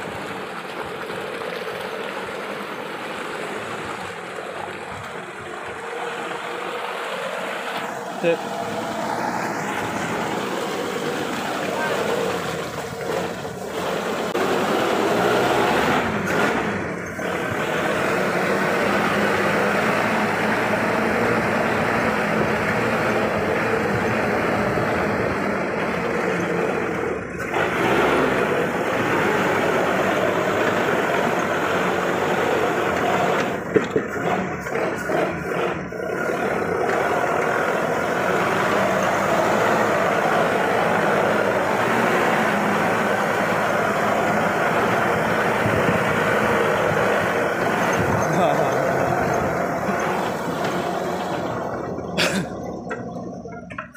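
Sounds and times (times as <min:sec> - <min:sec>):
vehicle engine running: 0:00.0 - 0:53.9.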